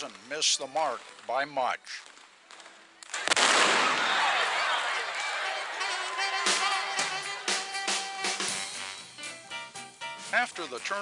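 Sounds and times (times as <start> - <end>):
gunshots: 3.1 - 4.5.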